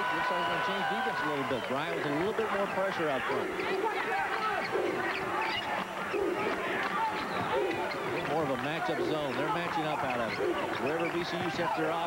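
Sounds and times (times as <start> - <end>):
arena crowd noise: 0.0 - 12.0
shoes squeaking on hardwood: 6.5 - 11.7.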